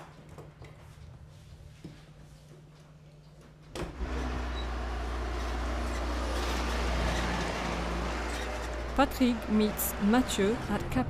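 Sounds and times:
road noise: 4.0 - 11.0
vehicle engine hum: 4.0 - 11.0.

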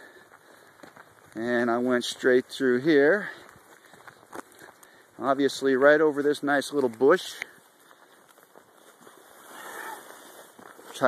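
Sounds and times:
footsteps rustling through dry brush: 0.0 - 11.0.

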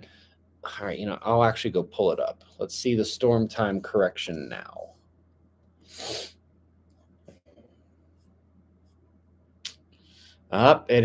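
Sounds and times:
man breathing through nose: 5.8 - 6.4.

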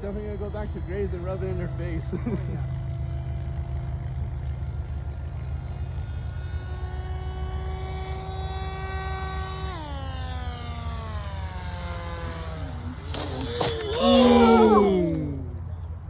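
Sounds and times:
steady low rumble: 0.0 - 14.0
small drone propeller whine: 0.0 - 16.0.

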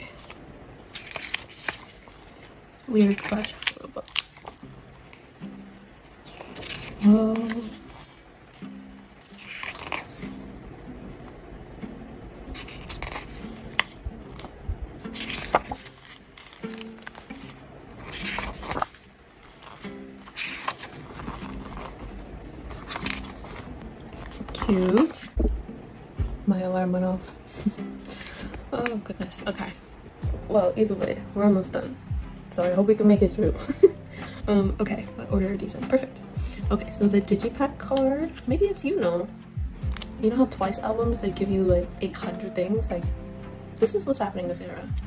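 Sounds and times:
paper pages turning: 0.0 - 5.3, 6.0 - 10.4, 12.5 - 25.4, 27.2 - 29.0, 39.9 - 40.1.

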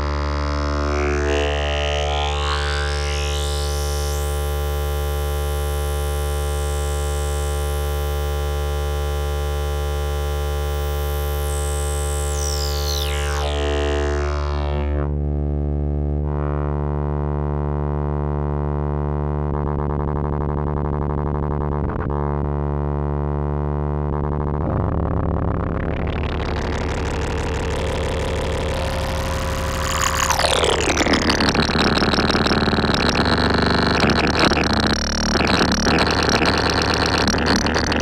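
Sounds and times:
buzzy synthesizer drone: 0.0 - 16.7, 19.5 - 38.0
fast fluttering synth pulse: 25.8 - 38.0.

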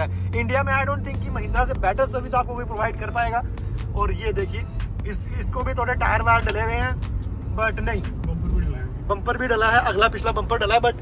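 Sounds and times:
car road and engine rumble: 0.0 - 11.0
man talking: 0.0 - 11.0.

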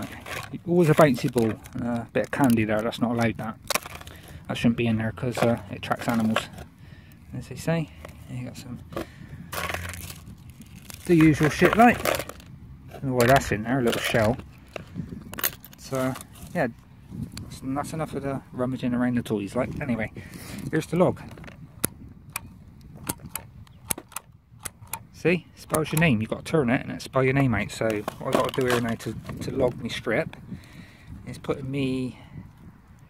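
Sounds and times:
plastic toys rattling and scraping: 0.0 - 6.7, 7.4 - 16.8, 19.5 - 21.6, 27.0 - 30.2.

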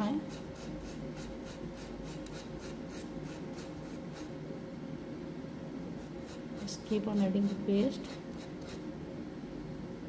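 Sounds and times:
palette knife scraping paste: 0.2 - 4.4, 6.0 - 8.9.

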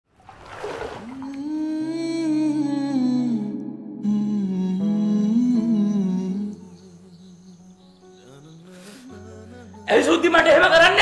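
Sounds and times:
person humming a wavering melody: 1.0 - 9.8.

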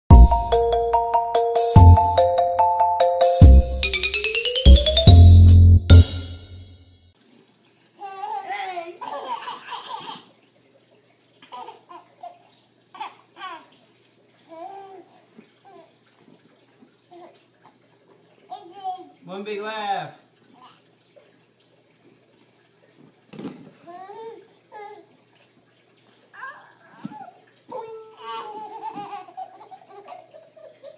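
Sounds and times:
intro music hit: 0.1 - 2.4, 3.1 - 6.9
baby laughing: 8.0 - 10.3, 26.4 - 30.9.

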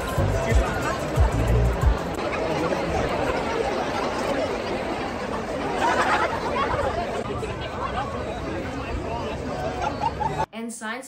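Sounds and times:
crowd chatting: 0.0 - 10.5.

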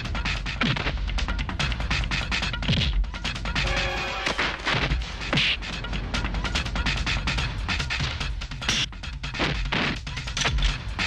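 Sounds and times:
action film music: 0.0 - 11.0
punch and whack sound effects: 2.7 - 3.0, 4.3 - 5.6.

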